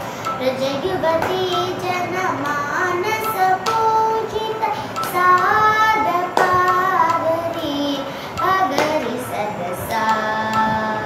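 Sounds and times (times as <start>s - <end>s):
girl singing devotional song: 0.0s - 11.0s.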